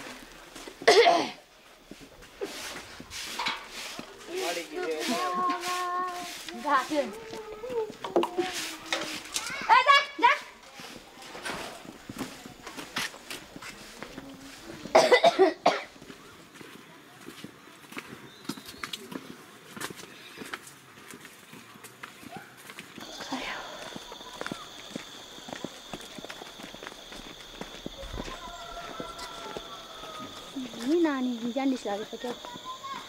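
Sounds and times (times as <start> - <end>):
light footsteps on dirt path: 0.0 - 33.0.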